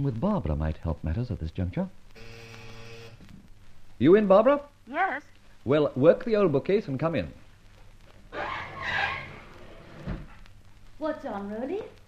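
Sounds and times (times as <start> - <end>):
electric buzzer: 2.2 - 3.2.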